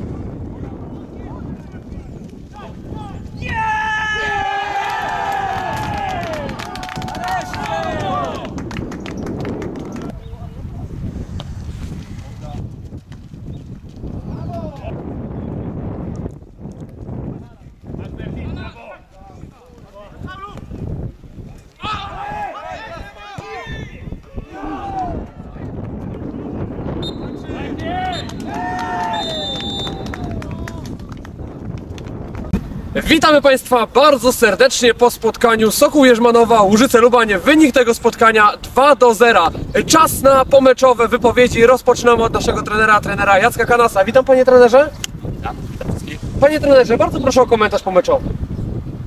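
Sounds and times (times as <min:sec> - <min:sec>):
wind rumble on microphone: 0:00.0 - 0:49.0
men shouting and cheering: 0:02.5 - 0:08.7, 0:21.6 - 0:25.8, 0:27.3 - 0:31.0.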